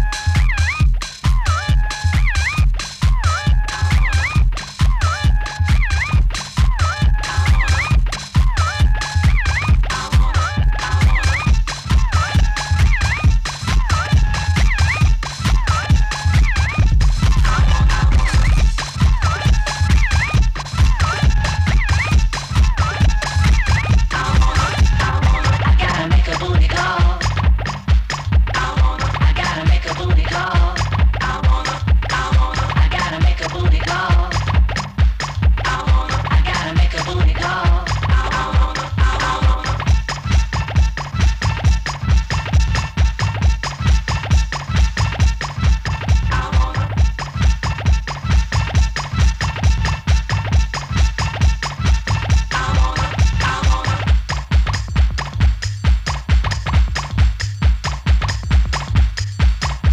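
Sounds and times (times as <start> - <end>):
fast heavy kick drum beat: 0.0 - 59.9
heavy bass: 0.0 - 59.9
turntable scratching: 0.0 - 59.9
mid-range sample: 3.8 - 59.9.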